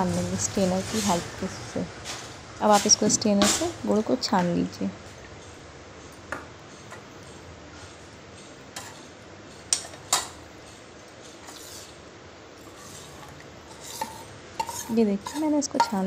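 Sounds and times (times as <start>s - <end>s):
steel kitchenware clinking: 12.8s - 16.0s.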